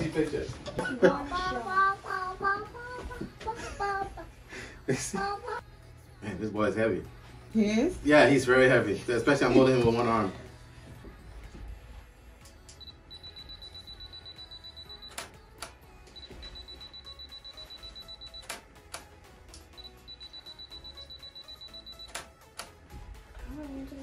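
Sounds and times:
high-pitched rapid beeping: 16.2 - 18.5, 19.8 - 22.1.

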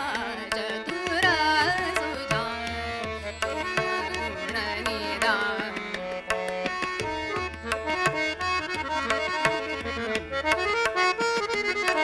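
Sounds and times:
harmonium melody: 0.0 - 12.0
tabla strokes: 0.0 - 12.0.

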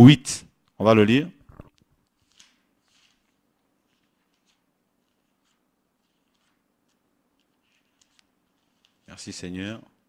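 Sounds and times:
pages being turned: 1.5 - 9.4.

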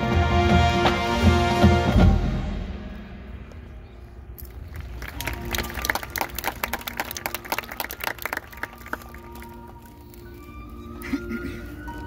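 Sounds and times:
marching band playing: 0.0 - 3.3.

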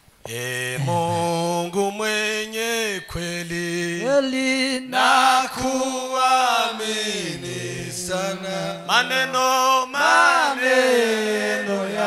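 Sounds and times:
men singing a slow hymn: 0.2 - 12.0.

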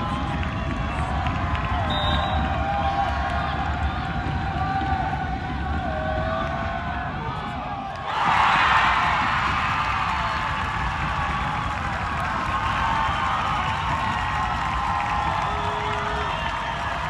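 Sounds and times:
crowd cheering and shouting: 0.0 - 17.0.

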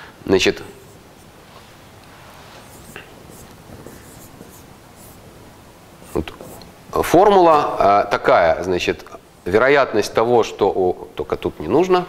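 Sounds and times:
marker writing on whiteboard: 2.1 - 5.4, 6.0 - 7.2.

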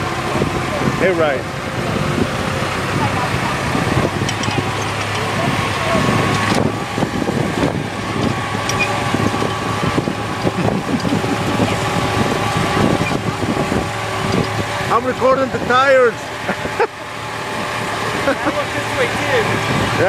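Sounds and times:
tractor engine running: 0.0 - 20.0.

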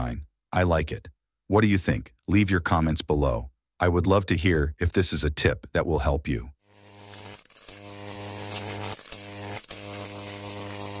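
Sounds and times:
electrical crackles: 6.7 - 11.0
low electric buzz: 6.7 - 11.0.

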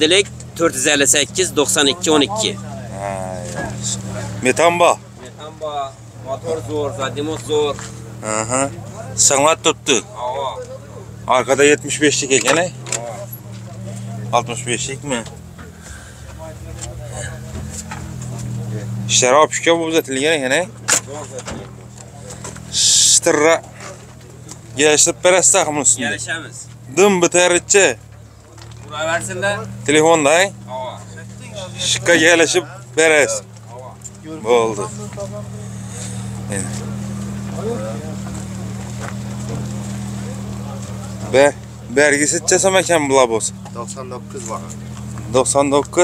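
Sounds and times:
faint voices: 0.0 - 46.0
vehicle engine idling: 0.0 - 46.0.

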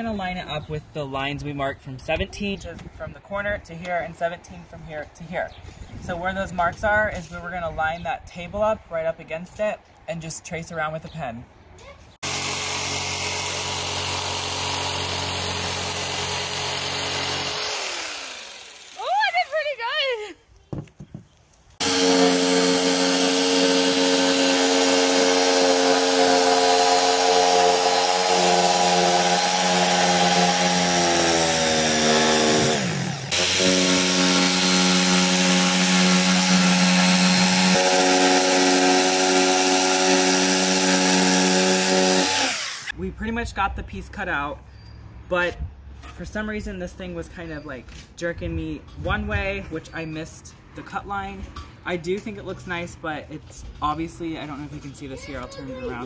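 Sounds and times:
electric jigsaw cutting wood: 12.2 - 19.2, 21.8 - 42.9.

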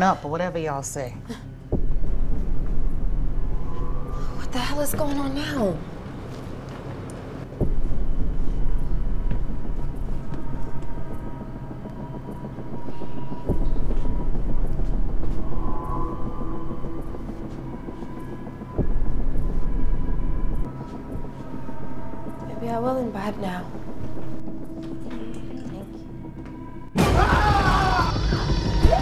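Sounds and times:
faint steady drone: 0.0 - 27.0.

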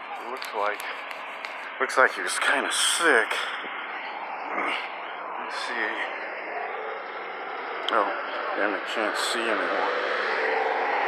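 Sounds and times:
street background rush: 0.0 - 11.0.

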